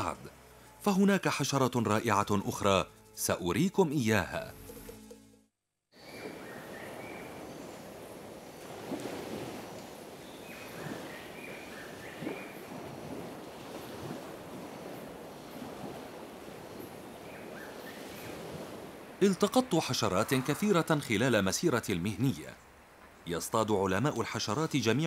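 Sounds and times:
wind: 0.0s - 5.3s, 5.9s - 25.0s
surf lapping at shore: 6.0s - 25.0s.

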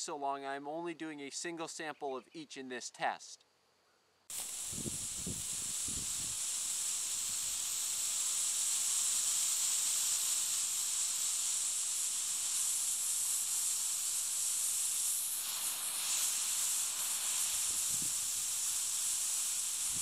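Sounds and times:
steady high hiss: 0.0s - 3.6s, 4.2s - 20.0s.

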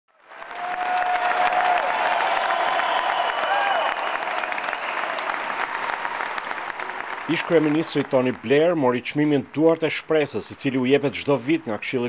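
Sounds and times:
audience applauding: 0.1s - 9.2s.

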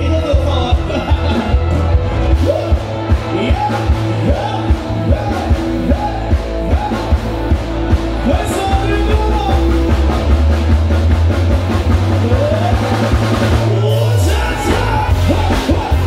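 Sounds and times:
man singing: 0.0s - 7.6s, 8.2s - 10.3s, 12.1s - 16.0s
drum kit: 0.0s - 16.0s
electric bass: 0.0s - 16.0s
electric guitars: 0.0s - 16.0s
keyboard: 0.0s - 16.0s.

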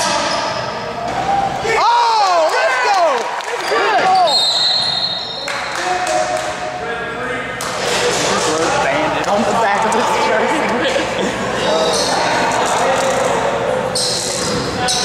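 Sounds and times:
players' voices: 5.3s - 15.0s.

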